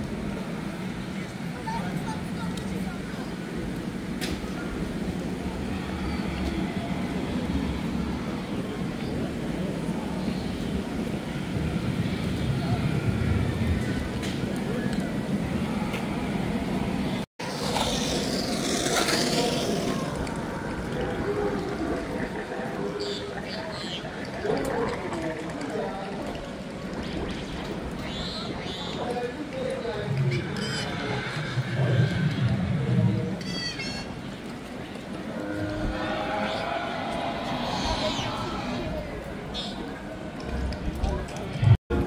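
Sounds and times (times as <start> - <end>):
distant people's voices: 0.0 - 42.0.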